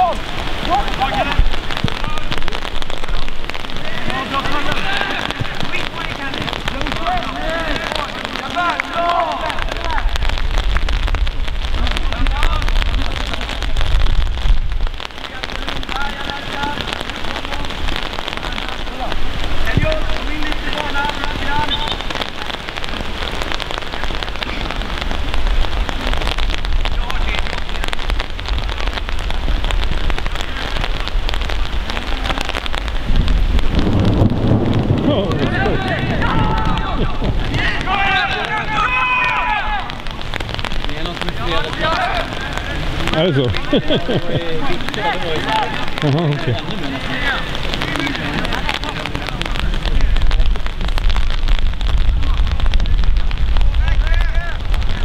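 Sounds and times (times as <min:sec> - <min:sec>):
distant shouts: 0:00.0 - 0:10.4, 0:35.0 - 0:43.7
rain hissing: 0:00.0 - 0:55.0
wind on microphone: 0:09.3 - 0:38.9, 0:39.8 - 0:55.0.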